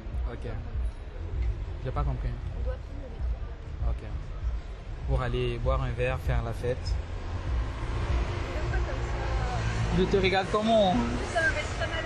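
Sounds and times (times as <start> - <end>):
city traffic rumble: 0.0 - 12.0
faint voices of passers-by: 0.0 - 12.0.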